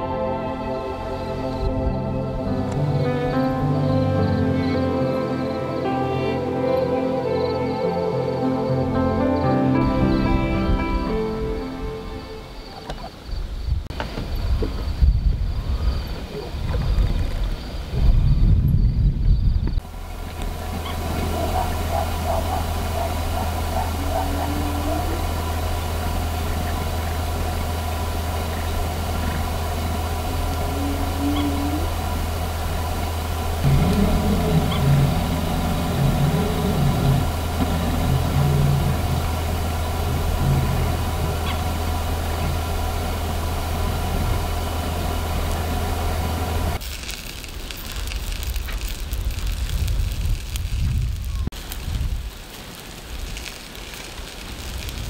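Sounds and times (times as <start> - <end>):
engine idling hum: 19.8 - 46.8
deeper broken sounds: 19.8 - 55.0.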